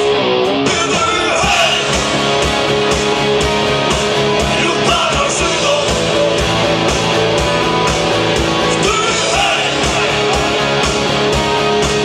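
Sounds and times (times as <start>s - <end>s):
electric guitars and bass: 0.0s - 12.0s
person singing: 0.6s - 2.0s, 4.4s - 6.5s, 8.7s - 10.8s.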